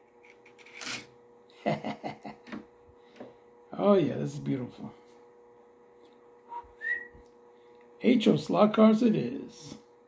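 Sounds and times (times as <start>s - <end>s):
person whistling two notes: 6.5s - 7.2s.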